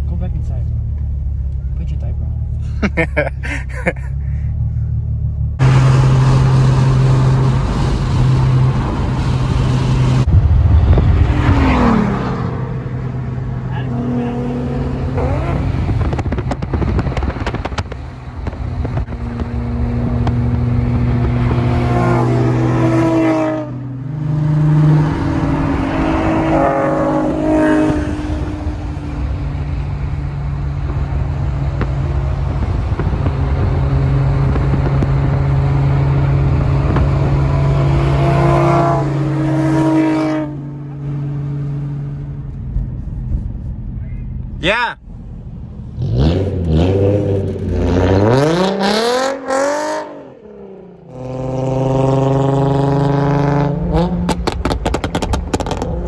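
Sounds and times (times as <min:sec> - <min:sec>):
car engine drone inside cabin: 0:00.0 - 0:46.0
road noise: 0:00.0 - 0:56.0
exhaust pops: 0:15.2 - 0:21.6, 0:30.7 - 0:37.6, 0:54.0 - 0:56.0.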